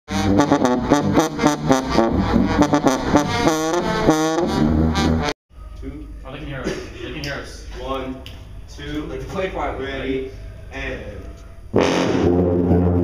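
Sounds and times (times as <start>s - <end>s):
sousaphones playing brass fanfare: 0.1s - 5.3s, 11.7s - 13.0s.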